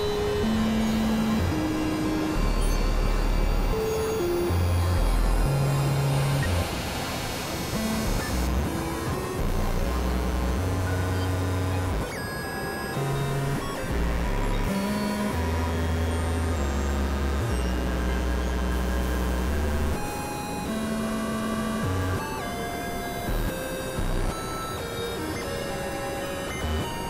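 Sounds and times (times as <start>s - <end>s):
low bass synthesizer drones: 0.0s - 6.9s, 7.7s - 12.0s, 13.1s - 20.0s
constant noisy hiss: 0.0s - 27.0s.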